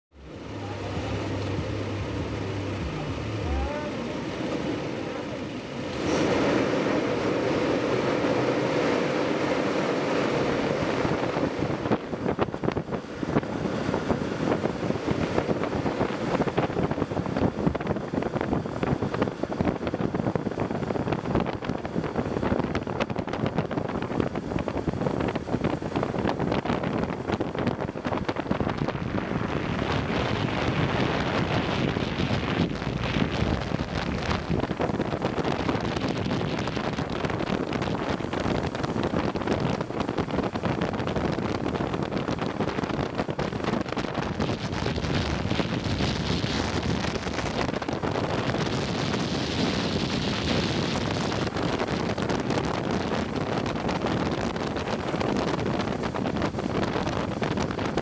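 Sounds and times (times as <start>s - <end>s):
low hum: 0.1s - 15.9s
longboard wheels rolling on asphalt: 0.1s - 58.0s
wind buffeting microphone: 0.2s - 58.0s.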